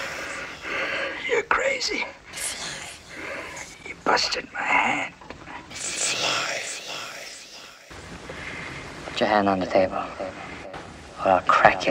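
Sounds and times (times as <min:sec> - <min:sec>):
person whispering: 0:00.0 - 0:07.9.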